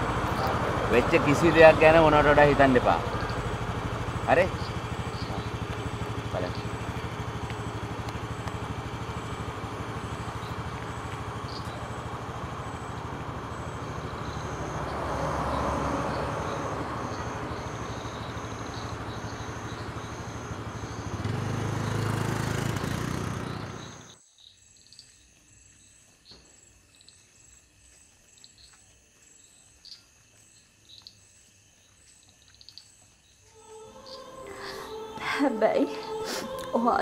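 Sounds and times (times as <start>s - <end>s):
passing vehicle: 0.0s - 24.2s, 33.4s - 37.0s
scooter engine idling: 0.0s - 24.2s
faint insect chirps: 0.0s - 37.0s.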